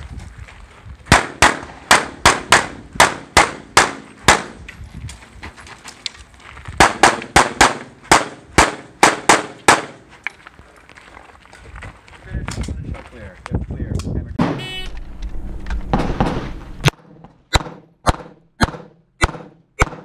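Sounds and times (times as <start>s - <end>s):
pistol shots: 1.1s - 4.6s, 6.8s - 10.0s, 17.5s - 20.0s.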